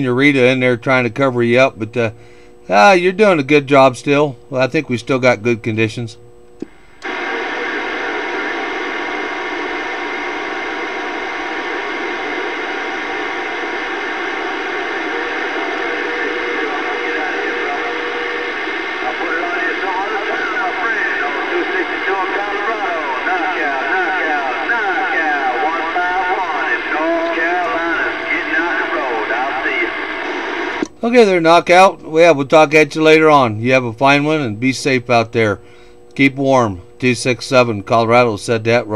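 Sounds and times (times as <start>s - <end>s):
radio static: 6.6s - 31.8s
garbled radio voice: 14.8s - 30.8s.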